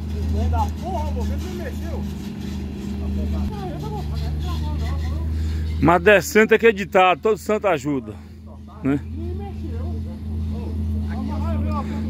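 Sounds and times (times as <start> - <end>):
truck diesel engine running: 0.0 - 12.0.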